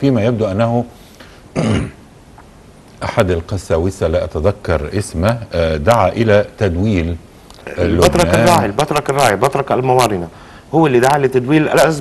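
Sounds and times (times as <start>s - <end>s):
man clearing his throat: 1.5s - 2.0s.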